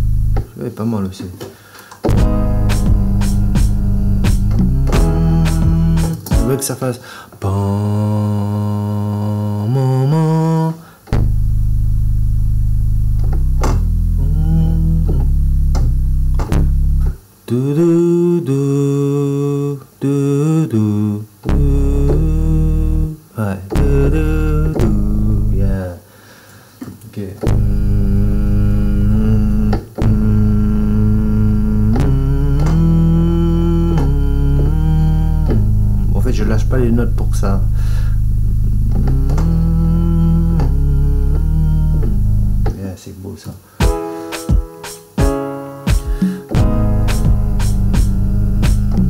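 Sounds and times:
synth bass notes: 0.0s - 0.5s, 2.1s - 6.8s, 11.1s - 17.2s, 21.5s - 23.2s, 23.8s - 25.8s, 27.5s - 42.7s, 46.5s - 49.0s.

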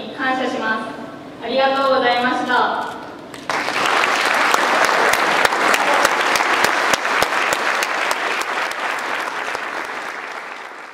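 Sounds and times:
audience applauding: 3.3s - 10.9s.

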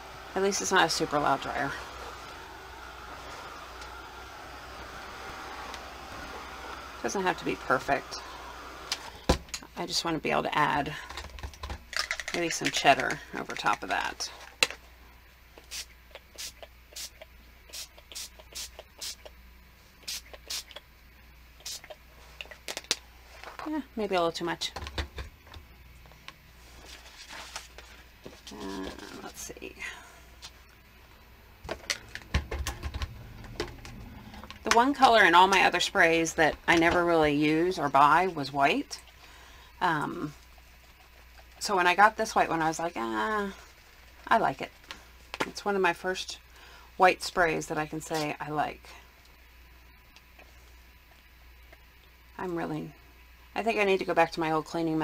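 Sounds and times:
handheld dryer whirring: 0.0s - 9.6s, 31.5s - 39.2s.

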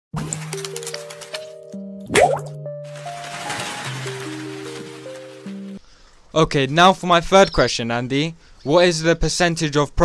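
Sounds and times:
cartoon water-drop plop: 2.0s - 2.6s
quick upward blip: 2.1s - 2.6s.

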